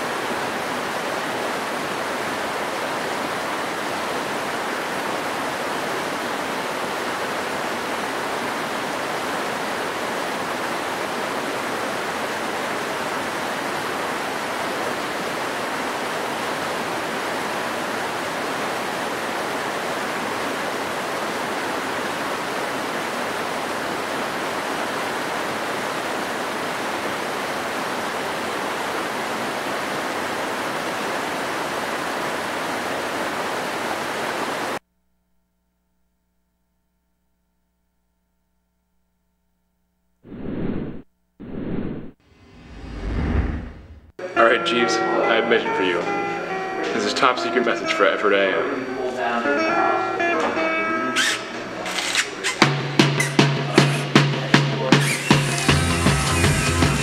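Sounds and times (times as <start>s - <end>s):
stream rushing over rapids: 0.0s - 34.8s.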